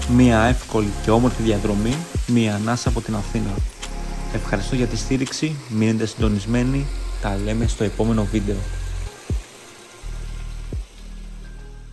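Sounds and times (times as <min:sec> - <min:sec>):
low bass drone: 0:02.9 - 0:05.2.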